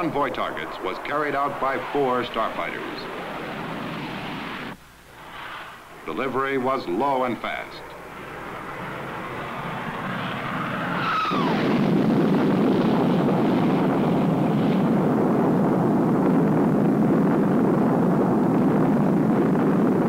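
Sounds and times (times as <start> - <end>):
jet engine falling whine: 0.0 - 20.0
jet rumbling roar: 0.0 - 20.0.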